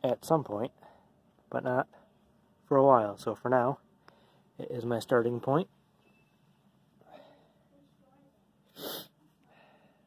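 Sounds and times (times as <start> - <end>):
sharp breath near microphone: 4.0 - 4.5, 8.7 - 10.0.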